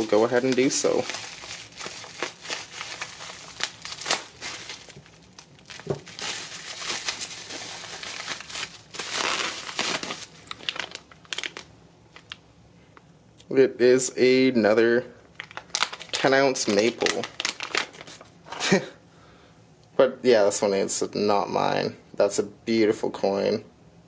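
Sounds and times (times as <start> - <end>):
bubble wrap crinkling: 0.0 - 12.4, 15.3 - 18.4
plastic bag rustling: 0.0 - 12.4, 15.3 - 18.4.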